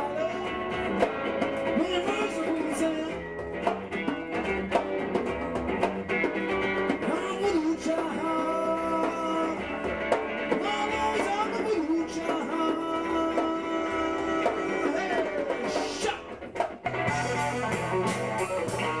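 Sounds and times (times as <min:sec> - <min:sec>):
bass guitar: 0:00.0 - 0:19.0
blues-rock electric guitar: 0:00.0 - 0:19.0
drum and cymbal hits: 0:12.2 - 0:19.0.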